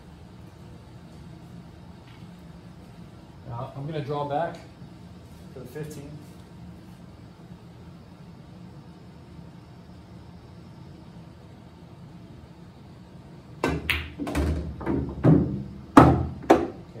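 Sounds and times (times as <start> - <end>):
billiard balls colliding: 13.6 - 16.8
cue tip striking ball: 13.6 - 16.8.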